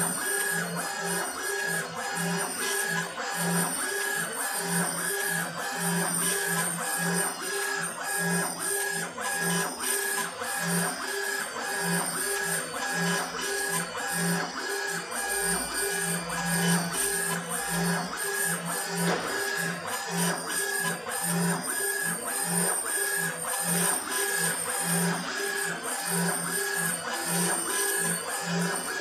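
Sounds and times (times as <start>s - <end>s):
engraving machine motors whining: 0.0s - 29.0s.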